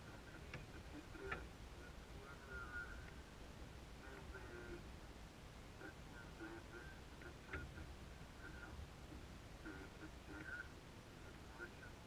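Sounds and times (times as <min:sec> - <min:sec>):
faint indistinct voices: 0:00.0 - 0:03.2, 0:04.0 - 0:04.9, 0:05.8 - 0:12.0
low steady rumble: 0:00.0 - 0:12.0.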